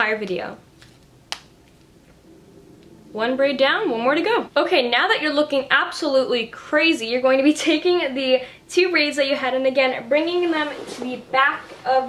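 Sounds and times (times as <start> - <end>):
hair tie snapping: 0.8 - 1.9.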